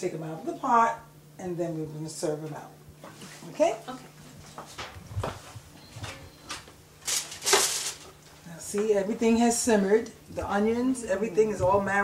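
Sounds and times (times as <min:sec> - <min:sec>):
rustling scuffing noises: 0:04.2 - 0:06.2.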